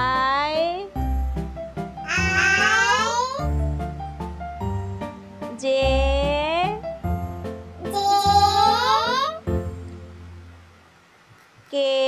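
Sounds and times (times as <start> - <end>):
children's backing music: 0.0 - 10.7.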